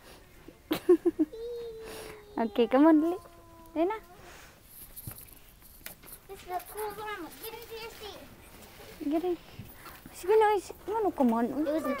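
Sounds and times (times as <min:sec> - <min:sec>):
child calling: 0:01.3 - 0:04.3, 0:11.7 - 0:12.0.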